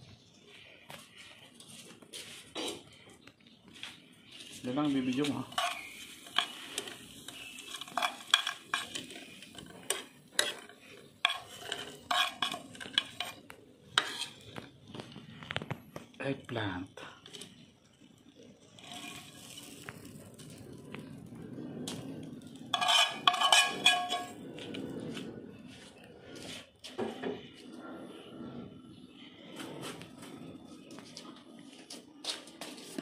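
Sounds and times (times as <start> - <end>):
utensil and dishes clattering: 5.0 - 14.6, 22.7 - 24.4.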